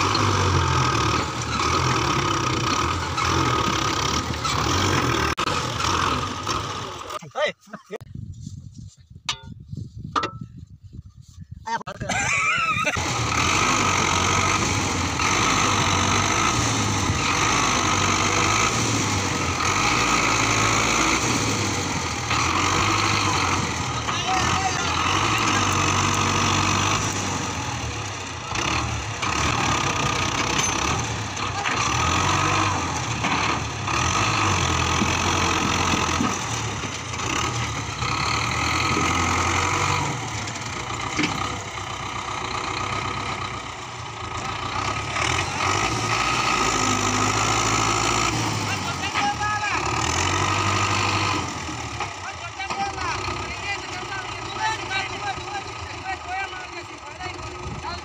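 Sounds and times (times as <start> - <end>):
tractor diesel engine under load: 0.0 - 8.3, 11.7 - 58.0.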